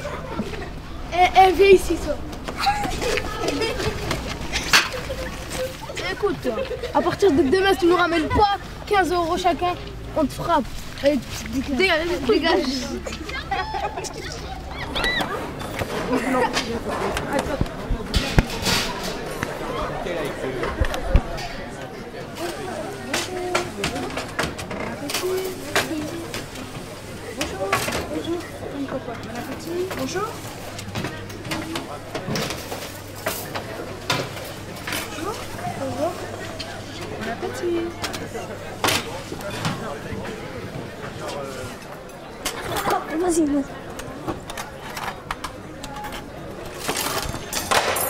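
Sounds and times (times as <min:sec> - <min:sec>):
chatter of children's voices: 0:00.0 - 0:47.5
trays and dishes clattering on metal: 0:02.7 - 0:05.7, 0:15.5 - 0:19.3, 0:29.2 - 0:37.4, 0:38.0 - 0:40.0, 0:44.5 - 0:48.0.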